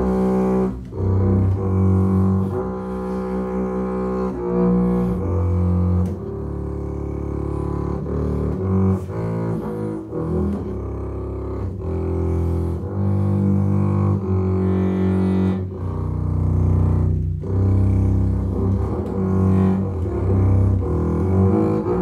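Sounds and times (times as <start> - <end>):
bowed double bass: 0.0 - 22.0.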